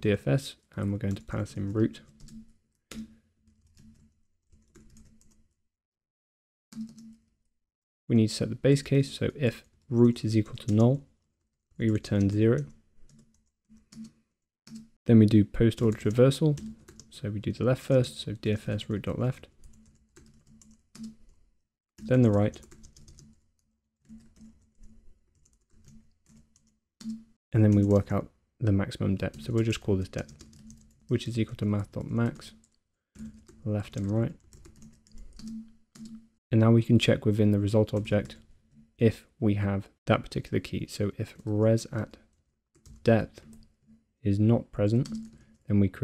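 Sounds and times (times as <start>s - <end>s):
typing on computer keyboard: 1.1s - 5.5s, 6.7s - 7.3s, 10.4s - 11.0s, 11.8s - 14.9s, 15.7s - 17.1s, 19.6s - 21.4s, 22.0s - 23.4s, 24.0s - 28.2s, 29.2s - 36.3s, 42.8s - 43.7s, 45.0s - 45.6s.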